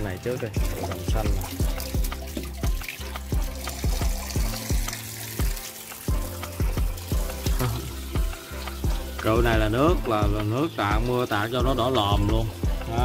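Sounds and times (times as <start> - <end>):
background music with steady beat: 0.0 - 13.0
water pouring and splashing: 0.0 - 13.0.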